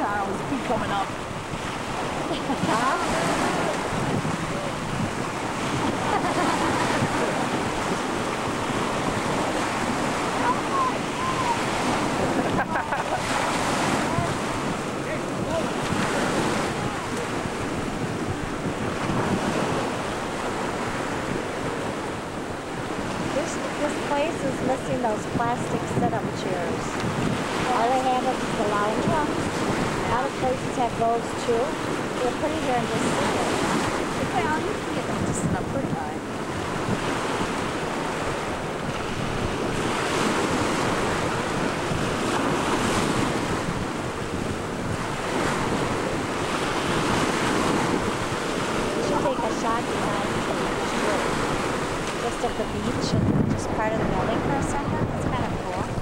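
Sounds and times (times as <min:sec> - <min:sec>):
sea surf washing and lapping: 0:00.0 - 0:56.0
wind buffeting microphone: 0:00.0 - 0:56.0
faint voices: 0:10.3 - 0:13.3, 0:48.7 - 0:56.0.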